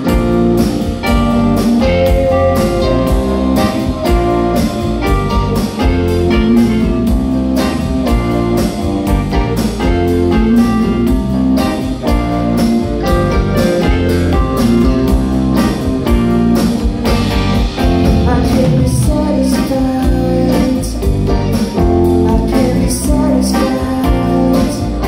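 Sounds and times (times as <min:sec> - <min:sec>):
steady drum beat: 0:00.0 - 0:22.1
live band playing: 0:00.0 - 0:25.0.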